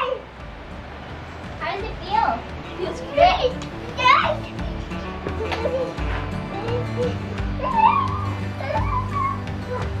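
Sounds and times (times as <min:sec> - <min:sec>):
background music: 0:00.0 - 0:10.0
children shouting and squealing: 0:02.8 - 0:10.0.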